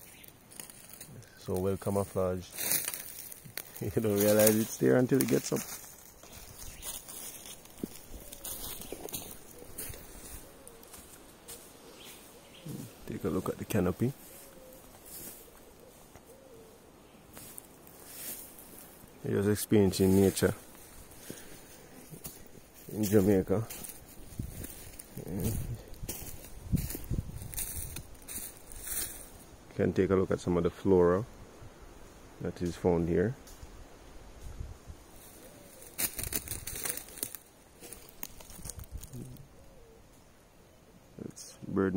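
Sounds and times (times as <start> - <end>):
footsteps on dry leaves: 0.0 - 29.5, 35.1 - 39.3.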